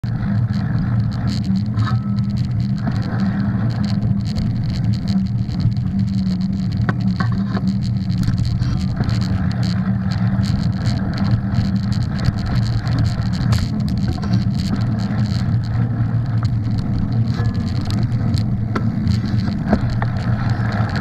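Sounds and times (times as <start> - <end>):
bike rattles and clicks: 0.0 - 21.0
bike tyres rumbling on dirt: 0.0 - 21.0.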